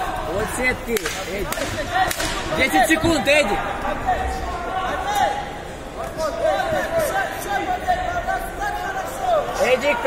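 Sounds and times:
voices shouting and calling out: 0.0s - 10.0s.

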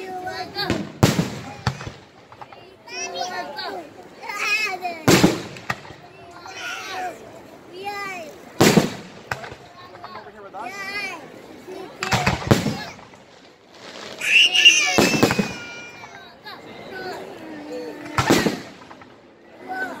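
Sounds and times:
voices: 0.0s - 20.0s
fireworks bangs: 0.3s - 3.3s, 5.0s - 6.7s, 8.6s - 10.3s, 12.0s - 16.3s, 18.0s - 19.3s.

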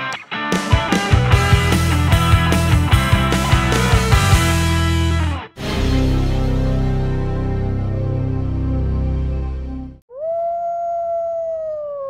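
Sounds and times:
wolf howling: 10.1s - 12.0s.

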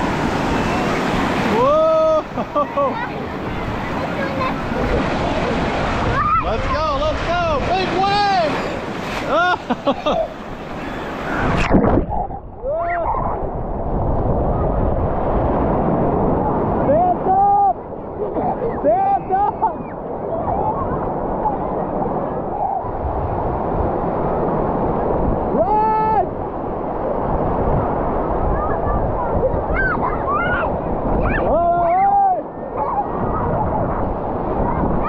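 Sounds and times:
ocean surf breaking: 0.0s - 35.0s.

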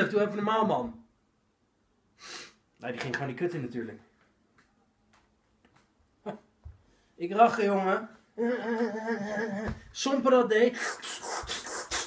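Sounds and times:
man humming: 8.4s - 9.8s.

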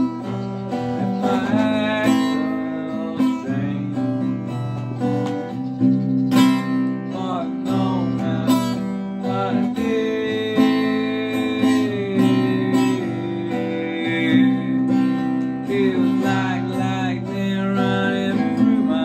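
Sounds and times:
acoustic guitar strumming chords: 0.0s - 19.0s
person humming wordlessly: 0.9s - 4.7s, 7.1s - 19.0s.

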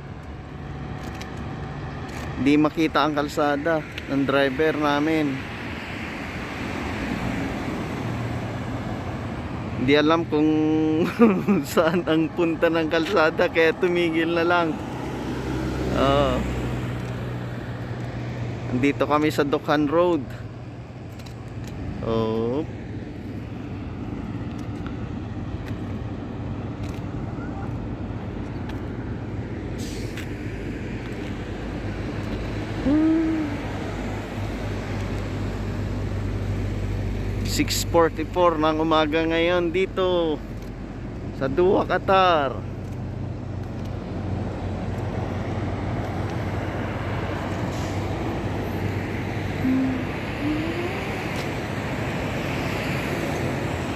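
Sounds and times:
cars driving past: 0.0s - 53.9s
highway traffic hum: 0.0s - 53.9s.

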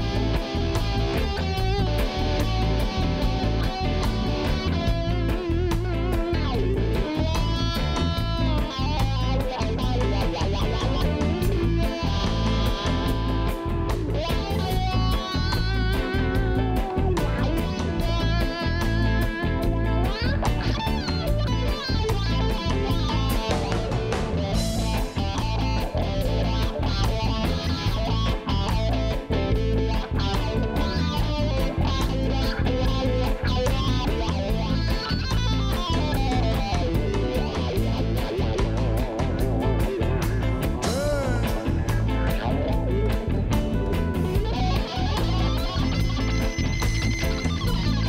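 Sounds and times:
bass and drum groove: 0.0s - 48.0s
electric guitar lead with bent notes: 0.0s - 48.0s
keyboard: 0.0s - 48.0s.

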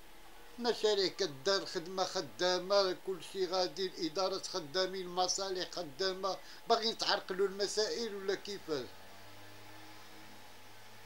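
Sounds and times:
background hiss: 0.0s - 11.0s
faint low hum: 0.0s - 11.0s.

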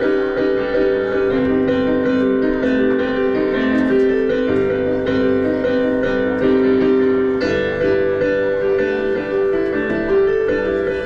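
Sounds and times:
keyboard playing piano chords: 0.0s - 11.0s.

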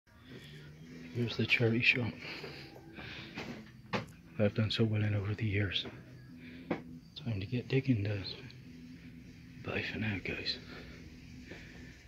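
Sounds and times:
indoor shop background noise: 0.1s - 12.0s.

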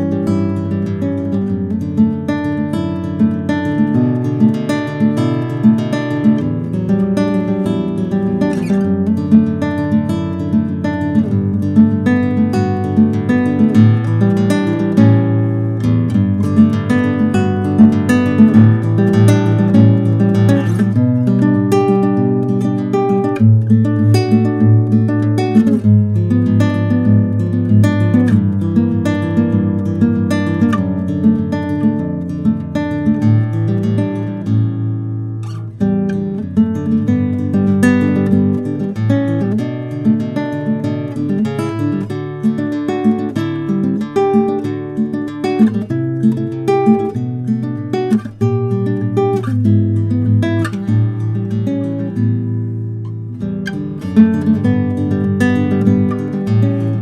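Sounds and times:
classical guitar played fingerstyle: 0.0s - 57.0s.

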